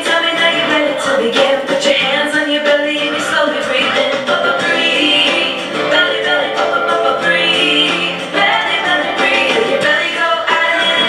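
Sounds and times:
children's song with backing: 0:00.0 - 0:11.0.

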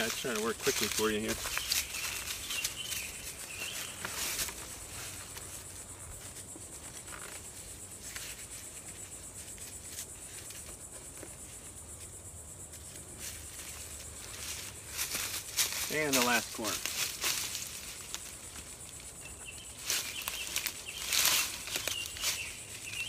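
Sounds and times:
insect chorus: 0:00.0 - 0:23.0
leaves and fabric rustling: 0:00.0 - 0:23.0.

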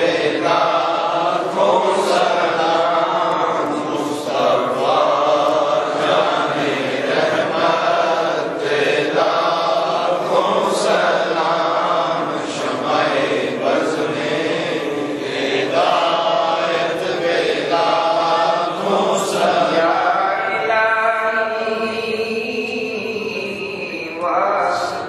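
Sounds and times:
men chanting in unison: 0:00.0 - 0:25.0.

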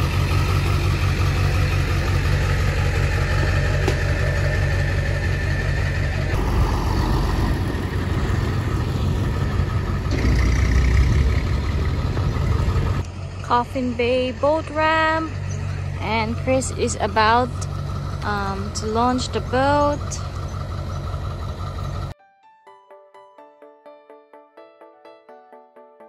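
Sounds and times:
truck engine running at low revs: 0:00.0 - 0:22.2.

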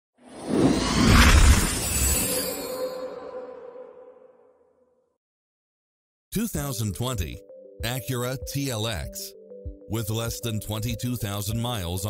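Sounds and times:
swelling whoosh: 0:00.2 - 0:04.6
glittery shattering shimmer: 0:00.8 - 0:03.4.

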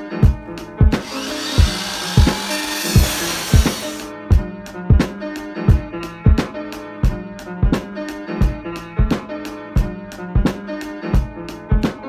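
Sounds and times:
background music with drum beat: 0:00.2 - 0:12.0
chop saw grinding through metal: 0:01.0 - 0:04.0.

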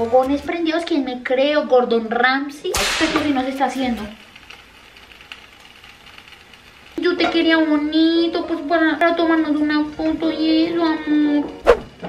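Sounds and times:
bacon sizzling in frying pan: 0:02.7 - 0:11.4.

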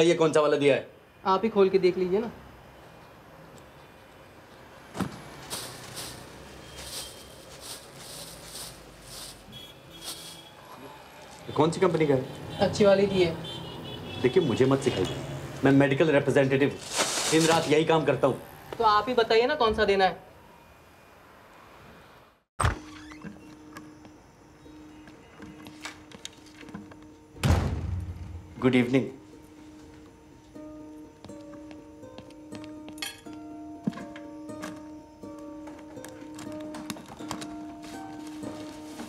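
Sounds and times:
plastic bag rustling: 0:05.4 - 0:11.5, 0:16.7 - 0:17.9, 0:35.8 - 0:39.0.

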